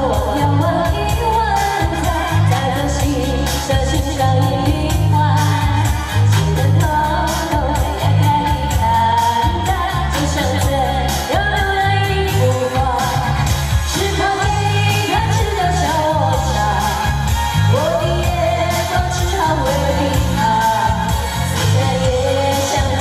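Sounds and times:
amplified backing music: 0.0s - 23.0s
heavy bass beat: 0.0s - 23.0s
woman singing into a microphone: 0.0s - 23.0s.

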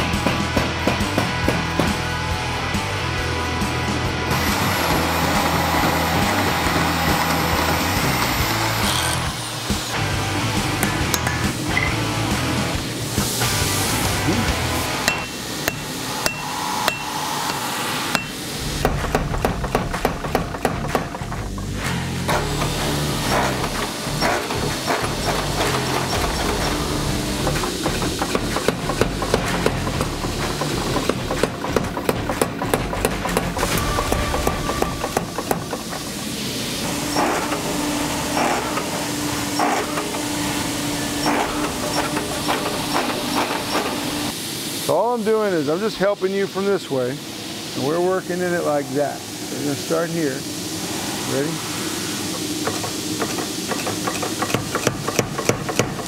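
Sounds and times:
background music: 0.0s - 16.0s, 25.3s - 35.8s
hammer striking hot steel: 10.7s - 12.1s, 14.8s - 36.2s, 52.3s - 56.0s.

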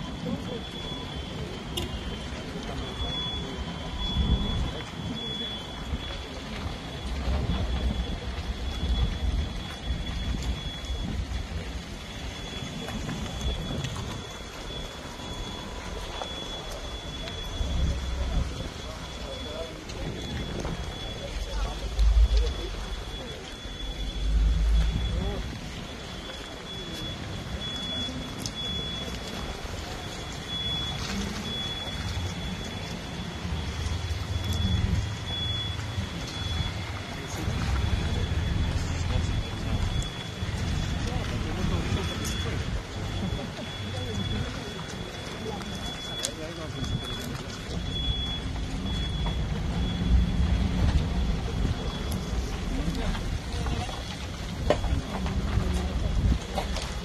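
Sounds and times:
indistinct voices: 0.0s - 57.0s
vehicles running: 0.0s - 57.0s
low rumbling: 1.9s - 57.0s.

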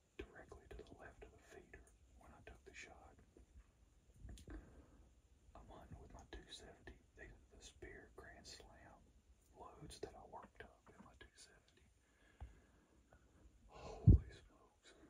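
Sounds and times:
man whispering: 0.0s - 3.4s, 5.5s - 12.0s, 13.7s - 15.0s.

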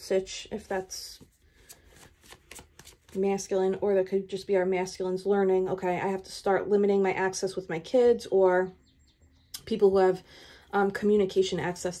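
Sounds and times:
cards clicking and rustling: 1.2s - 3.2s.

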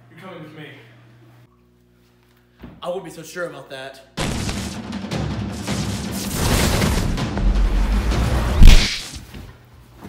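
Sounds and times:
whip-like crack: 8.6s - 9.2s.

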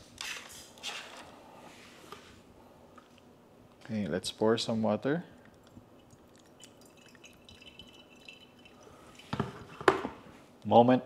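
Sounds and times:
light dripping: 5.4s - 9.4s
thin stream of water pouring: 5.6s - 9.8s.

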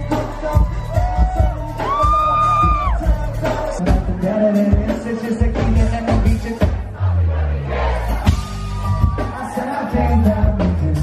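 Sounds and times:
crowd noise: 0.0s - 11.0s
live band playing loud: 0.0s - 11.0s
drum hits: 8.1s - 9.4s.

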